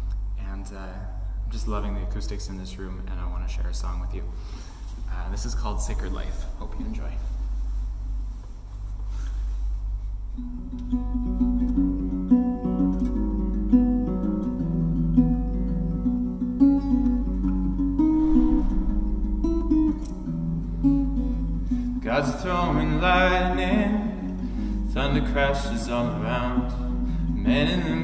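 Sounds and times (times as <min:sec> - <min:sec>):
steady low hum: 0:00.0 - 0:16.6, 0:17.2 - 0:28.0
acoustic guitar: 0:04.4 - 0:28.0.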